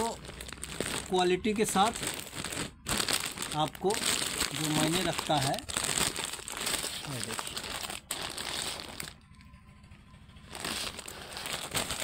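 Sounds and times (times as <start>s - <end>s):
plastic wrapping crinkling: 0.0s - 9.6s, 10.4s - 12.0s.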